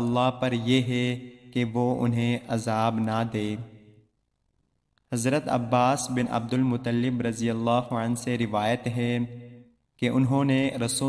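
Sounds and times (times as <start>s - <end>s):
man narrating: 0.0s - 3.7s, 5.1s - 9.3s, 10.0s - 11.0s.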